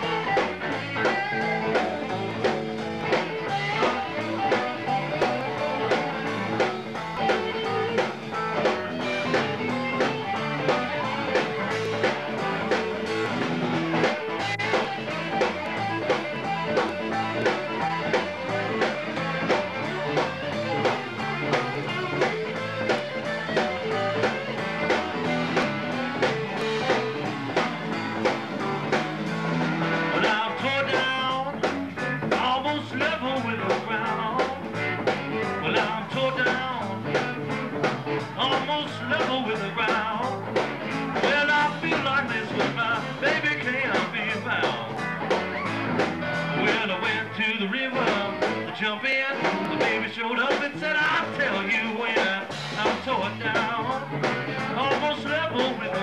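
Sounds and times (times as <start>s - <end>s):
drum kit steady beat: 0.0s - 56.0s
electric guitar: 0.0s - 56.0s.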